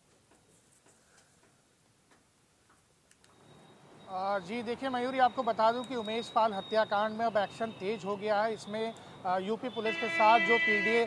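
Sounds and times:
faint clicks: 0.1s - 3.4s, 5.7s - 6.2s, 8.9s - 9.1s.

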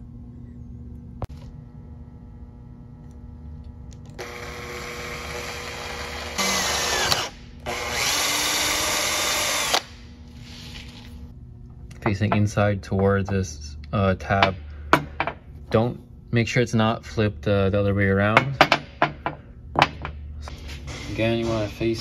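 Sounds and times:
cordless drill boring metal: 4.2s - 9.9s.

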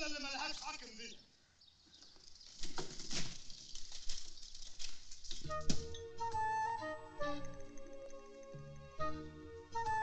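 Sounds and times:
metal gurney rattling and clicking: 1.9s - 6.5s.

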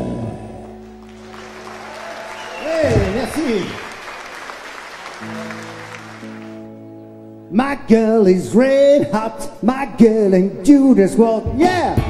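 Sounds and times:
audience applause: 1.0s - 6.8s
electric guitar chord ringing: 5.2s - 7.6s.

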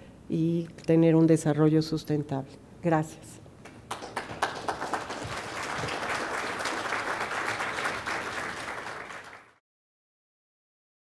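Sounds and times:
audience applauding: 3.7s - 9.6s.

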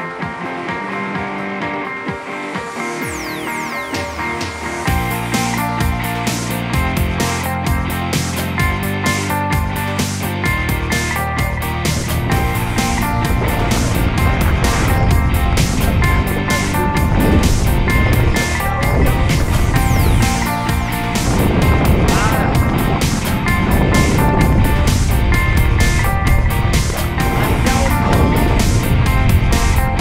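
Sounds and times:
music with steady beat: 0.0s - 30.0s
low rumble: 10.5s - 30.0s.

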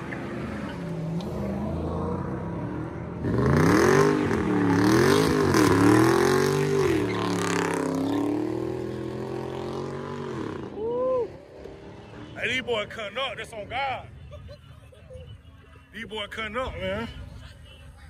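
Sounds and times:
car engine revving hard: 3.2s - 10.6s.

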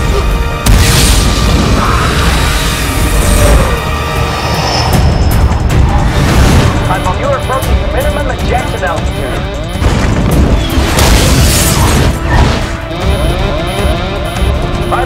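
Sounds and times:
orchestral score: 0.0s - 9.4s
radio voice warning: 6.8s - 9.6s.

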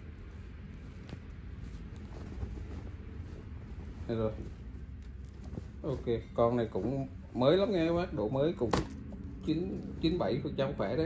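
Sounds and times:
fabric rustling: 0.0s - 10.4s
low room hum: 0.0s - 11.0s.

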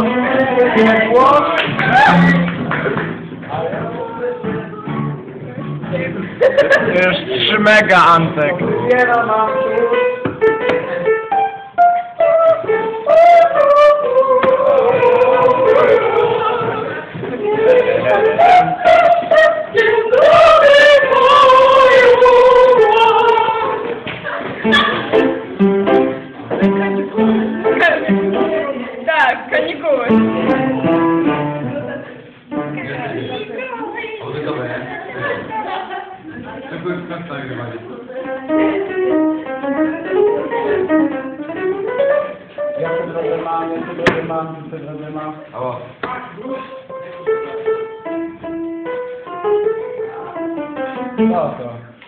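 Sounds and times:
simple instrumental melody: 7.6s - 23.8s, 24.6s - 33.8s, 38.1s - 43.9s
plucked guitar notes: 24.6s - 29.0s, 29.6s - 33.5s, 38.2s - 43.4s.

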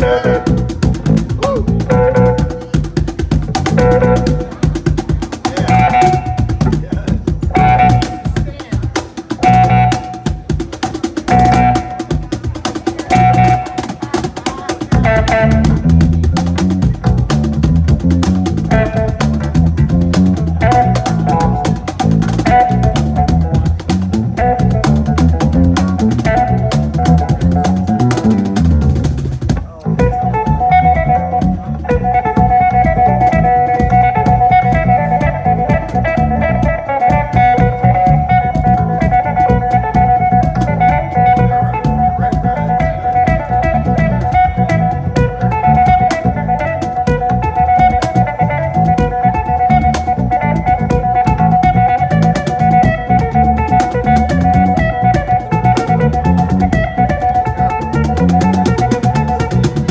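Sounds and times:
bass cigar box: 0.0s - 8.4s, 14.9s - 59.9s
amplified guitar notes: 0.0s - 59.9s
cajon beat: 0.0s - 59.9s.

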